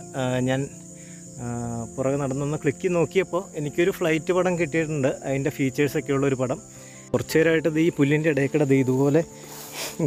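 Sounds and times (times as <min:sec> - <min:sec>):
insects chirring: 0:00.0 - 0:10.0
man talking: 0:01.4 - 0:06.6, 0:07.2 - 0:09.3.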